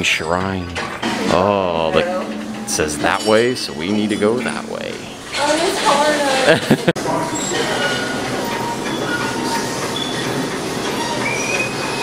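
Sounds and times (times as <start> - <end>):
steady machinery noise: 0.0 - 12.0
high metallic squeals: 0.6 - 6.4, 7.2 - 12.0.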